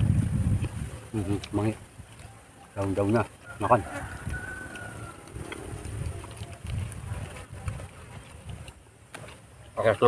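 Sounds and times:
people chewing greens: 0.0 - 10.0.

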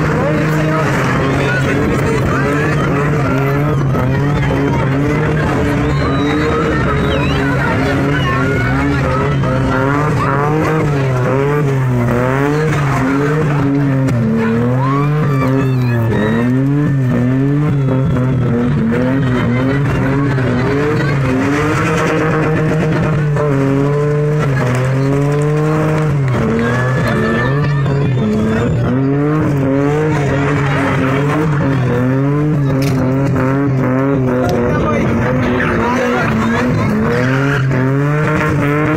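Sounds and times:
car engine revving: 0.0 - 38.9.

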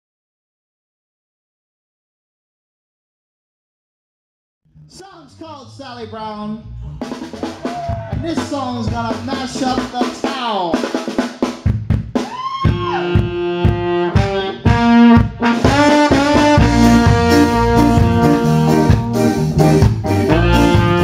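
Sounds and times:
drum kit: 6.8 - 21.0
horn section with trombone: 13.0 - 21.0.

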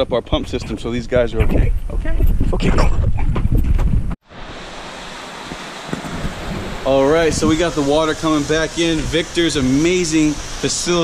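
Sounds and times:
wind buffeting microphone: 0.0 - 4.2, 5.9 - 11.0.

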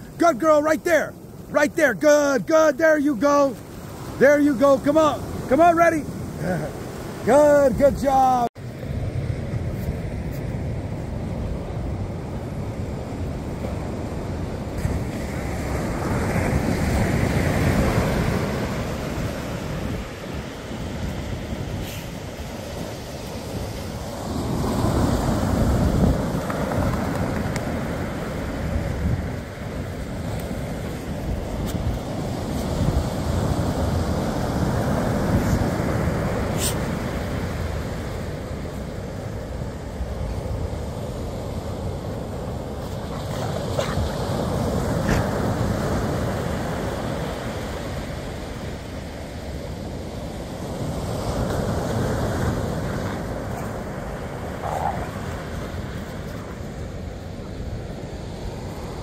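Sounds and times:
surf breaking on a beach: 0.0 - 59.0.

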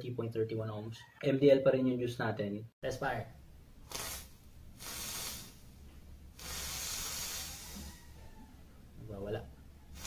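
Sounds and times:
person exhaling vapour: 3.9 - 5.6, 6.4 - 8.0.

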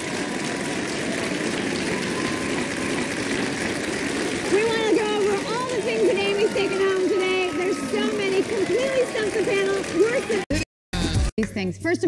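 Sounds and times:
audience applauding and cheering: 0.0 - 10.6.

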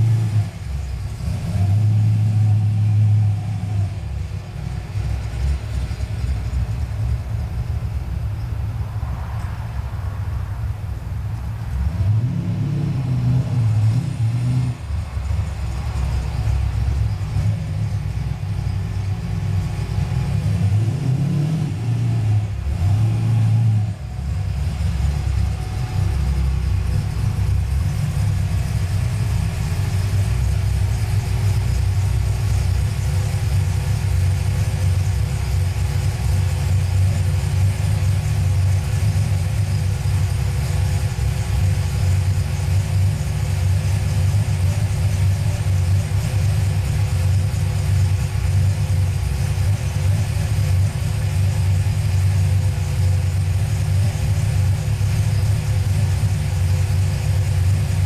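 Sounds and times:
car engine idling and revving: 0.0 - 58.0.

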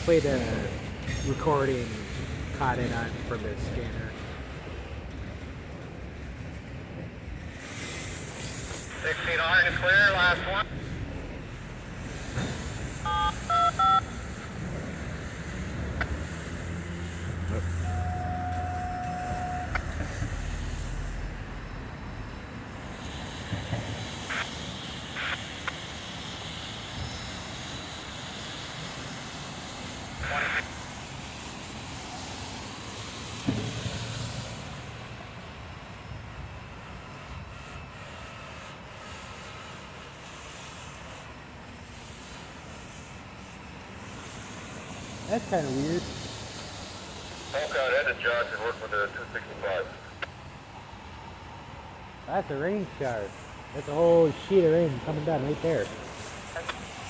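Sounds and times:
freight train rumbling past: 0.0 - 57.0
radio scanner steady tone: 8.4 - 11.5, 12.3 - 14.5, 17.3 - 22.6, 23.9 - 26.1, 30.2 - 30.8, 45.2 - 50.4, 52.3 - 57.0
radio scanner short beeps: 13.1 - 14.1, 17.8 - 19.9.

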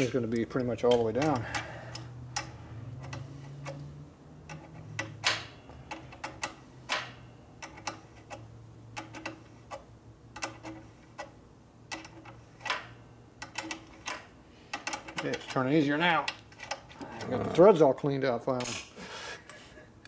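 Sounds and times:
wrench clicking on metal adjuster: 0.0 - 11.3, 11.9 - 16.9.

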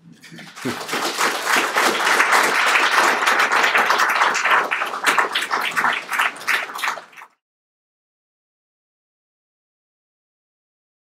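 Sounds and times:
audience applauding: 0.1 - 7.4.

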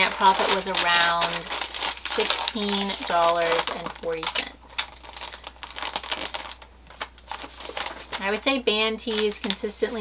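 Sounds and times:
packing paper crinkling: 0.0 - 10.0.

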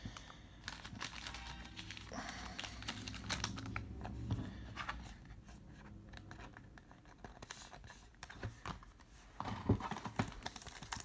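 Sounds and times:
trading cards clicking and rustling: 0.6 - 11.0.

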